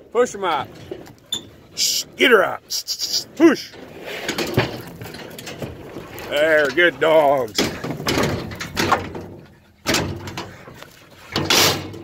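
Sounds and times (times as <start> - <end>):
metal gate clanking and rattling: 0.2 - 12.0.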